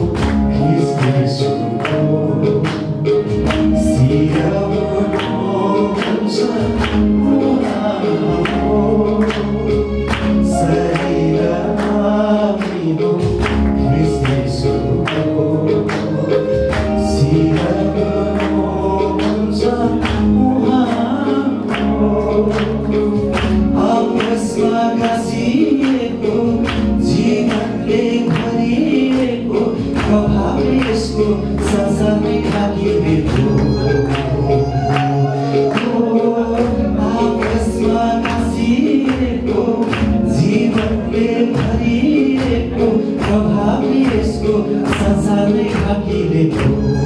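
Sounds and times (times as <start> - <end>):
band accompaniment with steady beat: 0.0 - 47.0
man singing into a microphone: 0.0 - 47.0.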